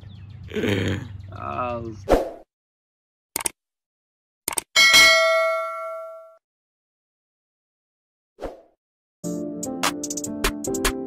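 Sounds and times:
bright bell ding: 0:04.8 - 0:06.4.

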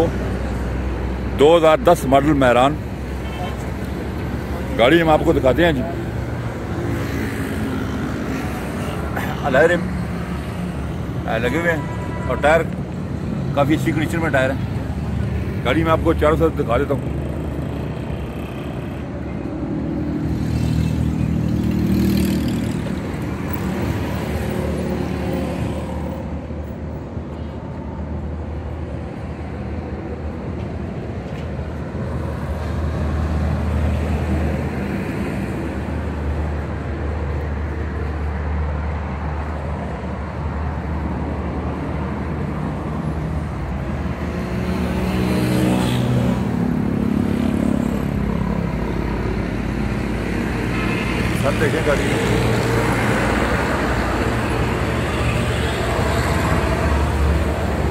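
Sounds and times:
rumble of passing vehicles: 0:00.0 - 0:57.9
loud engine passing by: 0:42.3 - 0:57.9.

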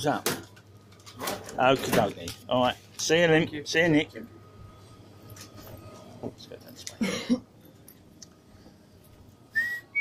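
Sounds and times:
person whistling high note: 0:09.5 - 0:10.0.

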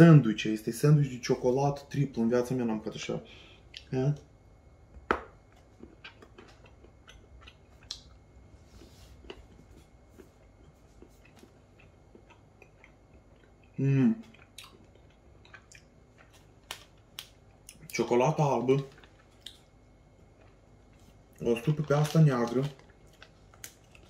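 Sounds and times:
person chewing chocolate: 0:05.3 - 0:24.0.

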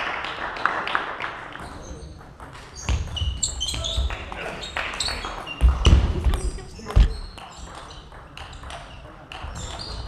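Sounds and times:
shoe squeaks: 0:01.6 - 0:10.0.

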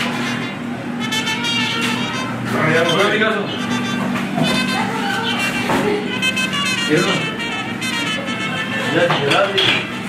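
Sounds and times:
music with held notes: 0:00.0 - 0:10.0
indistinct voices talking: 0:00.6 - 0:10.0.

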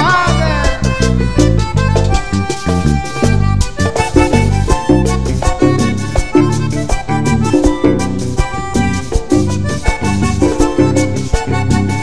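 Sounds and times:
button accordion melody: 0:00.0 - 0:12.0
congas and hand drum: 0:00.0 - 0:12.0
electric bass: 0:00.0 - 0:12.0.

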